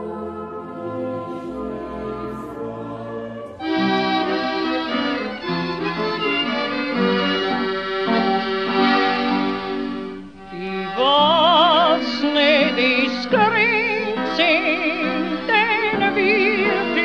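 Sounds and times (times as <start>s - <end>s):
accordion playing chords: 0.0s - 17.0s.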